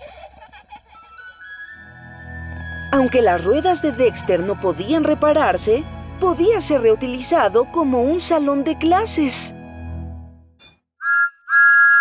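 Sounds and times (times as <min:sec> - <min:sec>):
music: 0:01.0 - 0:10.6
cartoon steam whistle: 0:11.0 - 0:12.0.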